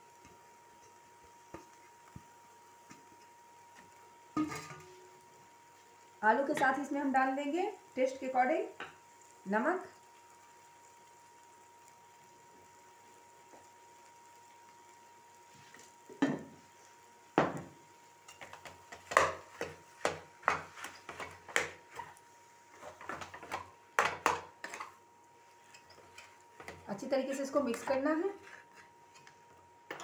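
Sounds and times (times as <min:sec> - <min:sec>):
spatula knocking on pan: 0:17.4 - 0:17.8, 0:18.4 - 0:21.8, 0:23.0 - 0:24.8.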